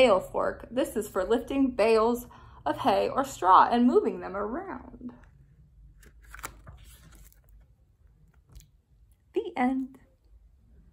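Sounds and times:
low room hum: 0.0 - 10.9
book closing clicks: 6.0 - 7.5
paper rustling: 6.0 - 8.6.

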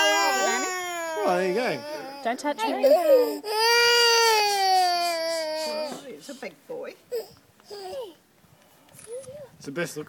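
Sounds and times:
young child crying: 0.0 - 6.1, 7.2 - 8.2.

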